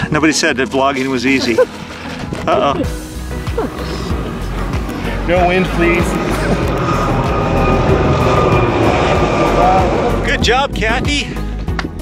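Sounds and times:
helicopter flying overhead: 0:02.9 - 0:11.5.

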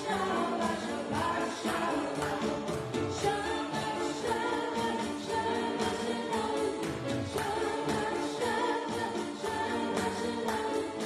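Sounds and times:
upright piano: 0:00.0 - 0:11.0
woman singing into a microphone: 0:00.0 - 0:11.0.

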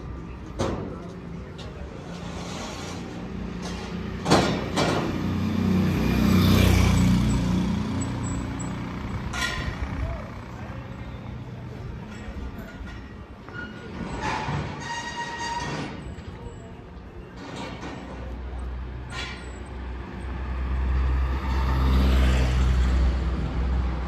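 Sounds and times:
street voices: 0:00.0 - 0:24.0
vehicle engine passing: 0:05.2 - 0:10.8, 0:20.2 - 0:24.0.

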